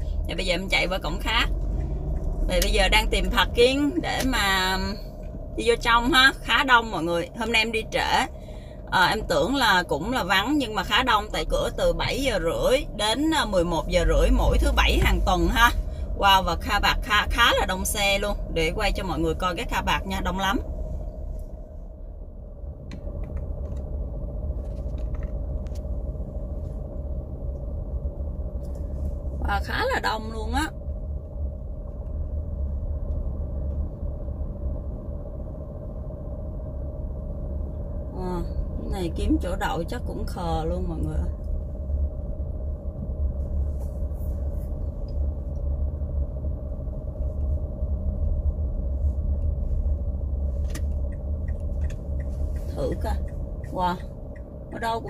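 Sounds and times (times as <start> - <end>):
car rumble and hum from inside: 0.0 - 55.0
light ticks: 50.7 - 54.6.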